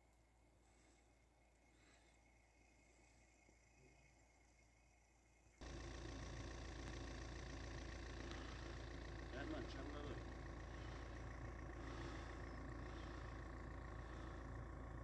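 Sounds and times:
vehicle driving on snowy road: 0:00.0 - 0:15.0.

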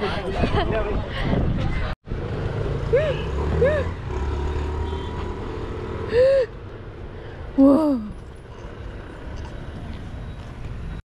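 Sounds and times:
wind on microphone: 0:00.2 - 0:01.9.

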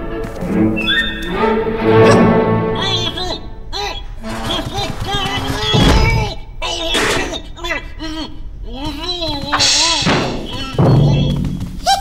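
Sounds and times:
crashing clatter: 0:04.2 - 0:07.4.

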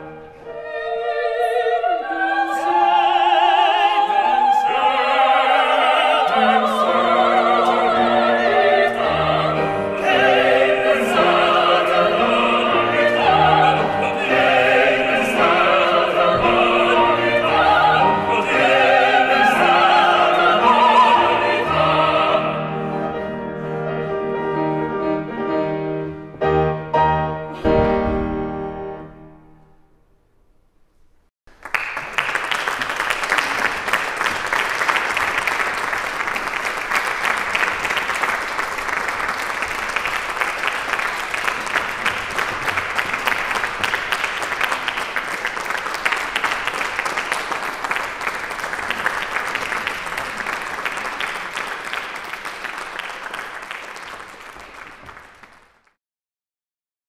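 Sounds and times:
audience applauding: 0:31.5 - 0:56.0.

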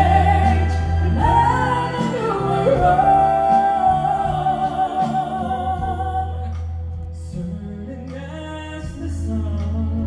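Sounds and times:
person singing: 0:00.0 - 0:10.0
symphony orchestra strings: 0:00.0 - 0:10.0.

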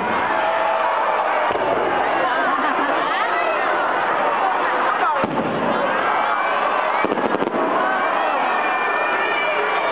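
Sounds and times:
crowd talking and calling out: 0:00.0 - 0:09.9
firework stars crackling: 0:05.2 - 0:06.0, 0:06.7 - 0:08.3.

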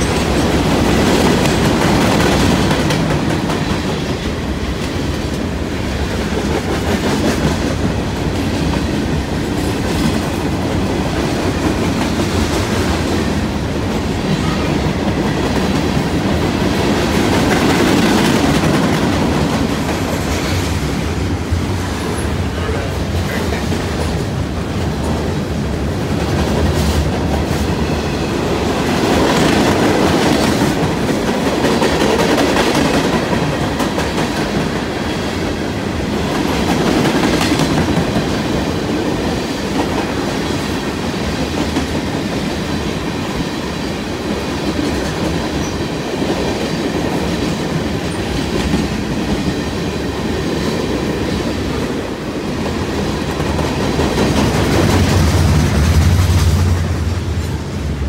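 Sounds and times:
train wheels clacking: 0:00.0 - 0:58.0
train wheels rumbling on rails: 0:00.0 - 0:58.0.

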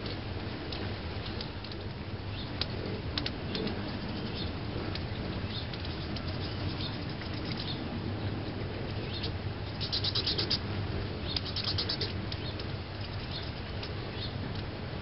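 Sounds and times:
hummingbird wings humming: 0:00.0 - 0:15.0
rapid high chipping calls: 0:09.0 - 0:13.6.

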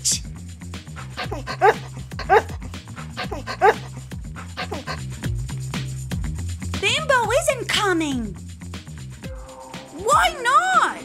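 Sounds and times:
light background music: 0:00.0 - 0:11.0
dog barking: 0:01.1 - 0:05.1.

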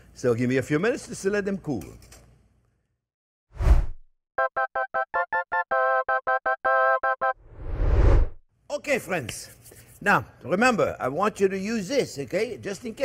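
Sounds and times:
whoosh: 0:07.4 - 0:08.4.

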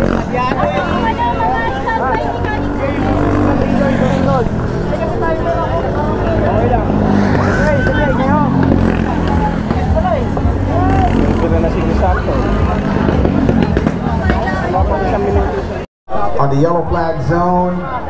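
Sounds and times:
go-kart engines humming: 0:00.0 - 0:15.8
people talking: 0:00.0 - 0:18.0.

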